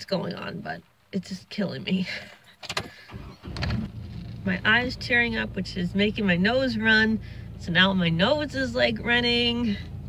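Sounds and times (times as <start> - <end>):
car engine starting and idling: 2.0 - 10.0.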